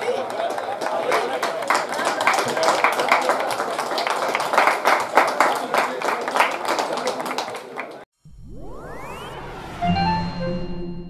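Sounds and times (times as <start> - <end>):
group clapping: 0.0 - 8.1
chime musical sting: 8.2 - 11.0
rising synthetic whoosh: 8.2 - 11.0.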